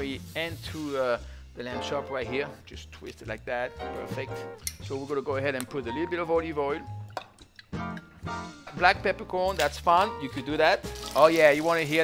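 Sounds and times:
background music: 0.0s - 12.0s
person speaking: 8.7s - 12.0s
oil pouring into a dish: 10.8s - 12.0s.

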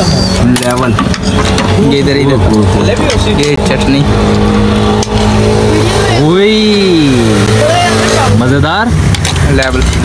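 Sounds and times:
engine revving and idling: 0.0s - 10.0s.

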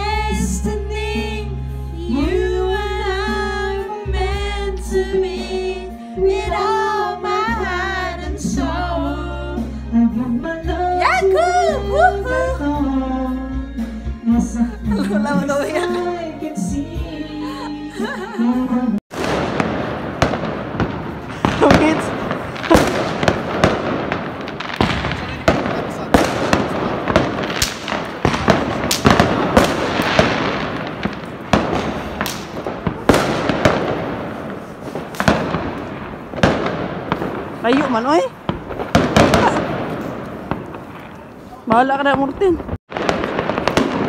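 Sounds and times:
fireworks crackling: 0.0s - 13.6s, 14.4s - 44.0s
firecracker bangs: 19.1s - 44.0s.

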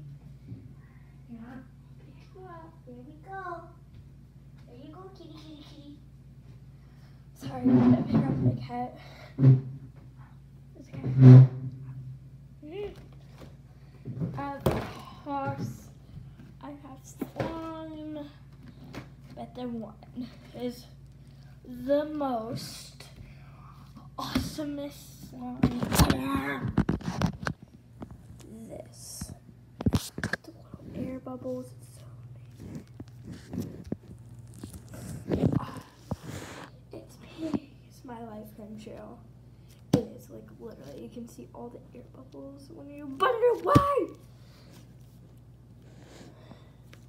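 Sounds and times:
girl shouting: 43.2s - 44.2s.

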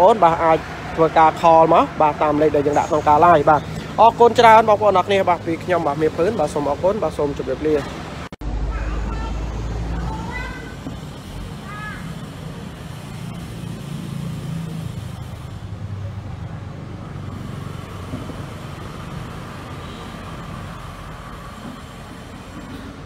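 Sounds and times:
road traffic: 0.0s - 23.0s.

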